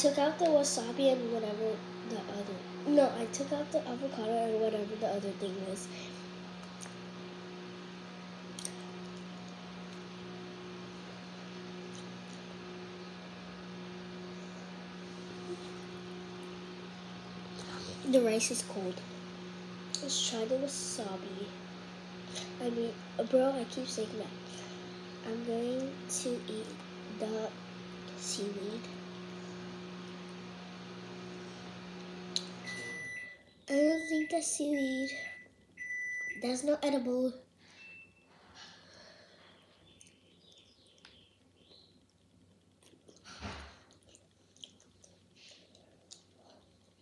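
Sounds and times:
low electrical hum: 0:00.0 - 0:47.0.

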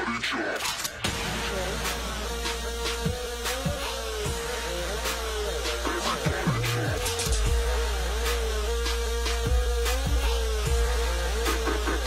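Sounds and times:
bass-heavy electronic music: 0:00.0 - 0:12.0.

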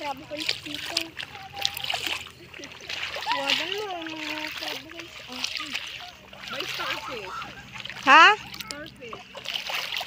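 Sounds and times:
water splashing under wading footsteps: 0:00.0 - 0:10.0.

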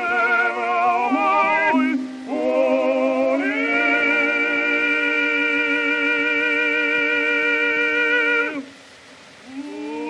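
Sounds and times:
opera duet singing: 0:00.0 - 0:08.7
record surface hiss: 0:00.0 - 0:10.0.

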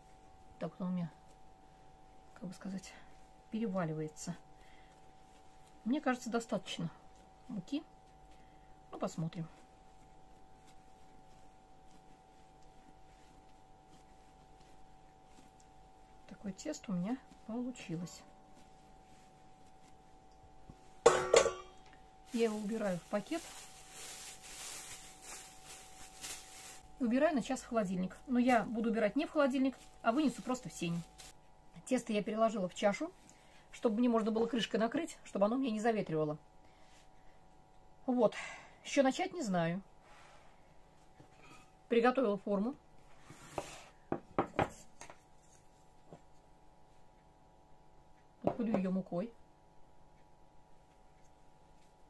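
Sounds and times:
metal bowl clanking on table: 0:21.1 - 0:21.8.

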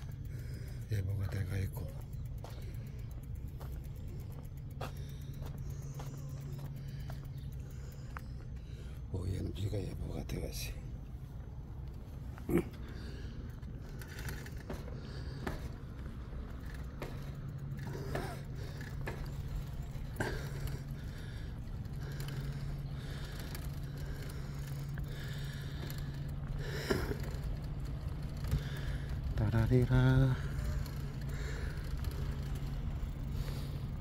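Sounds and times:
bicycle rumbling: 0:00.0 - 0:34.0.

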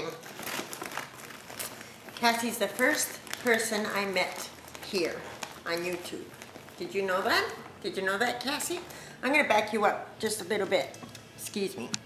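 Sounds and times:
paper and packaging crinkling: 0:00.0 - 0:09.0.

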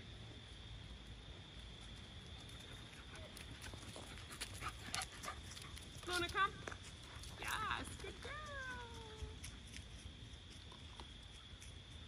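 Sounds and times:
dog paws on gravel: 0:01.9 - 0:12.0.

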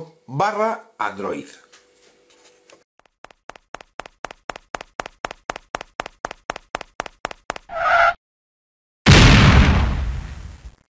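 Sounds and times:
cartoon footstep taps: 0:03.2 - 0:07.7.

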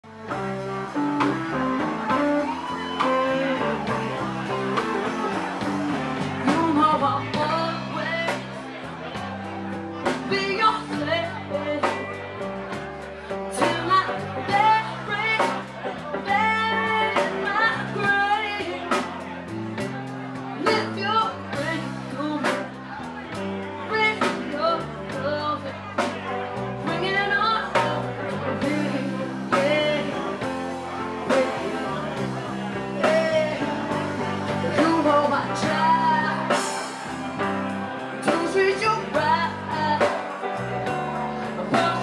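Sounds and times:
person singing: 0:00.0 - 0:08.8, 0:23.8 - 0:42.0
live band playing: 0:00.0 - 0:42.0.

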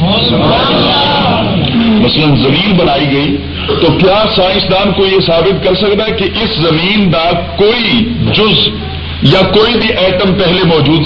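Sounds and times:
steady low hum: 0:00.0 - 0:11.0
man lecturing: 0:01.8 - 0:11.0.

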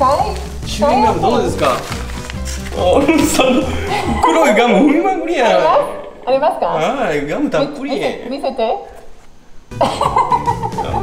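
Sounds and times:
background music: 0:00.0 - 0:08.9, 0:09.6 - 0:11.0.

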